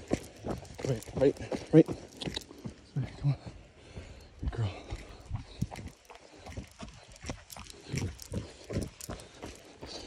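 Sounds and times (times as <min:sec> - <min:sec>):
running footsteps on dirt: 0:00.0 - 0:10.0.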